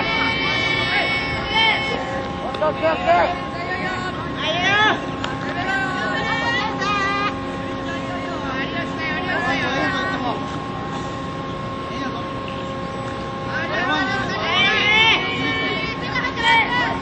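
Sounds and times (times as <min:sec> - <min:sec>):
children shouting: 0:00.0 - 0:05.0, 0:14.2 - 0:17.0
steady mechanical hum: 0:00.0 - 0:17.0.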